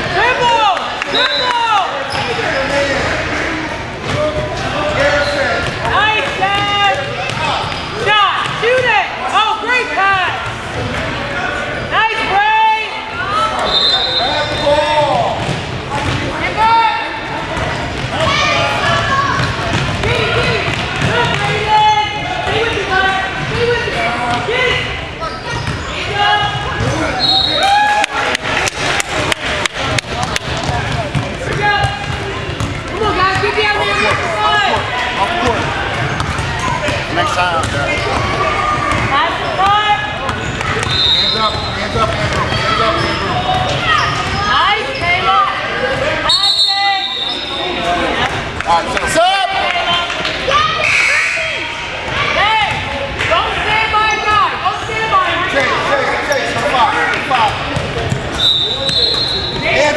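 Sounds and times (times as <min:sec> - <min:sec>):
sneakers squeaking: 0:01.1 - 0:03.5, 0:04.1 - 0:08.9, 0:13.2 - 0:27.7, 0:30.1 - 0:48.1, 0:53.9 - 0:59.9.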